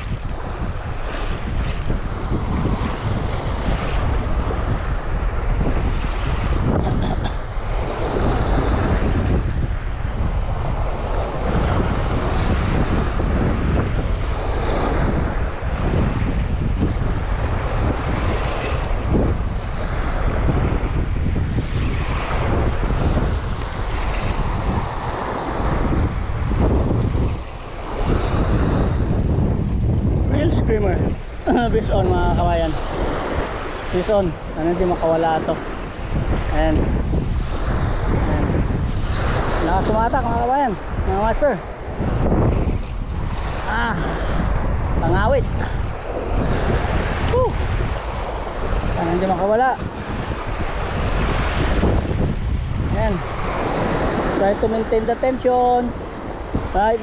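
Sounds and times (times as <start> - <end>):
small waves on sandy beach: 0.0 - 57.0
wind buffeting microphone: 0.0 - 57.0.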